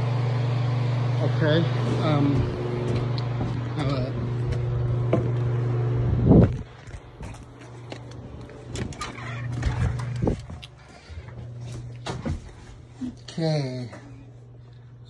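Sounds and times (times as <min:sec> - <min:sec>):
low machine hum: 0:00.0 - 0:15.0
handling noise: 0:06.4 - 0:12.6.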